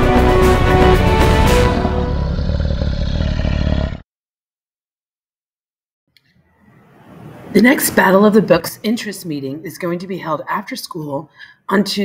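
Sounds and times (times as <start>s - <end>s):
tiger roar: 1.9s - 4.0s.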